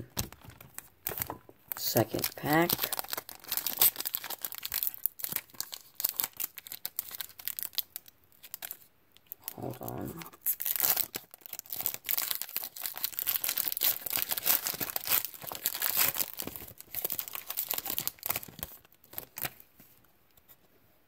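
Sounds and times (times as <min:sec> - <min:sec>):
plastic wrapper crackling: 0:00.0 - 0:19.8.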